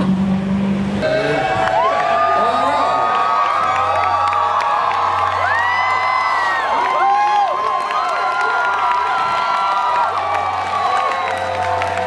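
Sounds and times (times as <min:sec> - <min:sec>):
crowd cheering and whooping: 0:01.0 - 0:12.0.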